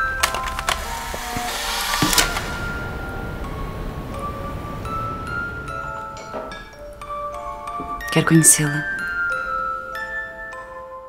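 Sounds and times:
soft score with bell-like tones: 2.4s - 11.0s.

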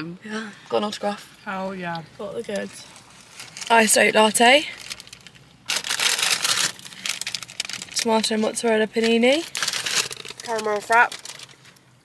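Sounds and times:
paper bag rustling: 2.7s - 11.8s.

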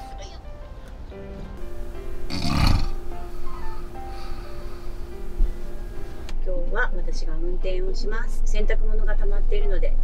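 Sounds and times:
light background music: 0.0s - 10.0s
man snoring: 2.3s - 3.1s.

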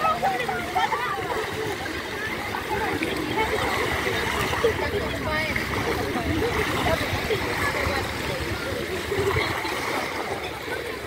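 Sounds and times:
people chattering: 0.0s - 11.0s
small waves lapping: 0.0s - 11.0s.

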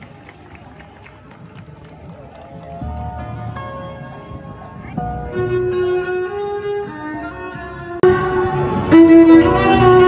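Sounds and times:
murmur of passers-by: 0.0s - 10.0s.

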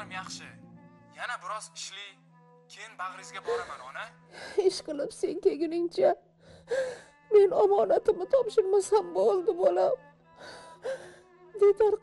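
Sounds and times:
elderly woman crying: 6.5s - 12.0s.

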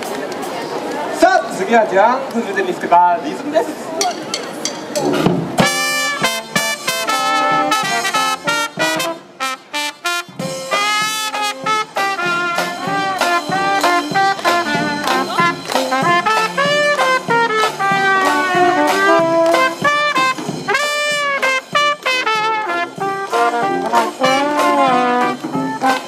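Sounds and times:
brass band playing upbeat tune: 5.0s - 26.0s.

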